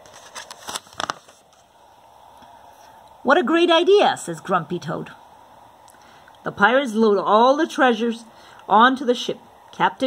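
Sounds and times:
paper page rustling: 0.0 - 1.8.

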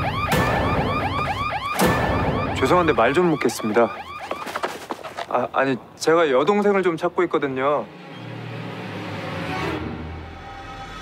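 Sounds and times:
warbling electronic alarm siren: 0.0 - 4.7.

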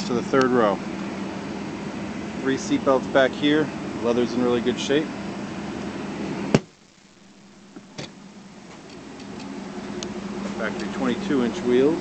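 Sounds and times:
sharp knock: 6.5 - 6.7.

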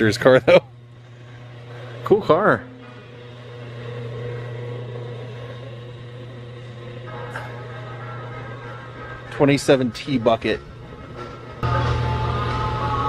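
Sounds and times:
faint wavering tones: 0.0 - 13.0
low room hum: 0.0 - 13.0.

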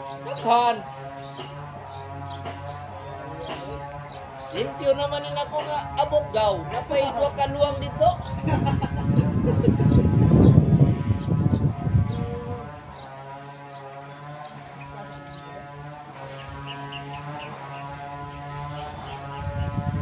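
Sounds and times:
birds chirping: 0.0 - 20.0
steady droning hum: 0.0 - 20.0
choppy low rumble: 4.8 - 13.0.

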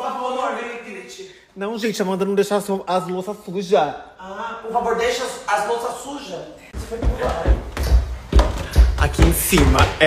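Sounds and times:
footsteps climbing stairs: 6.8 - 10.0.

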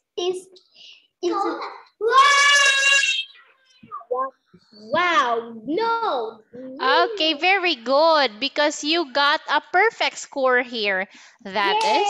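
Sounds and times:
girl's voice holding a vowel: 6.6 - 7.4.

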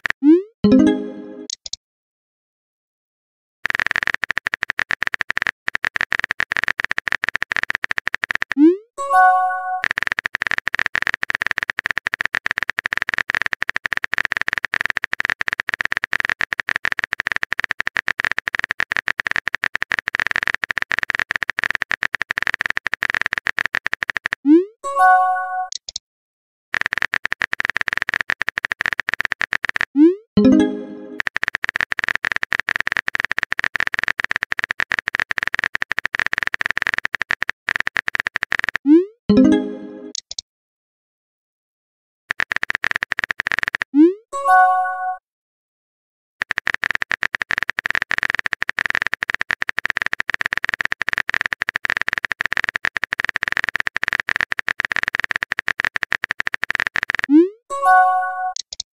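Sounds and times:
bright keyboard-like clicks: 1.4 - 1.8, 3.7 - 8.6, 9.7 - 24.4, 25.7 - 26.0, 26.8 - 38.8, 39.7 - 40.4, 42.3 - 43.9, 46.4 - 57.5, 58.4 - 58.9.

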